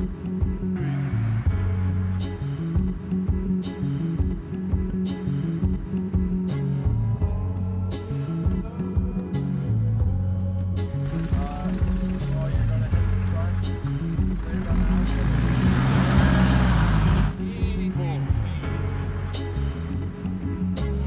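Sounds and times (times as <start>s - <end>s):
background music with beat: 0.0s - 21.0s
van engine and tyres on snow: 11.0s - 17.4s.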